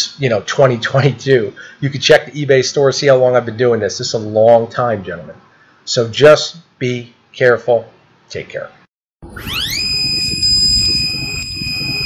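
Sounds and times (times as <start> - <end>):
high-pitched electronic tone: 9.2 - 12.0.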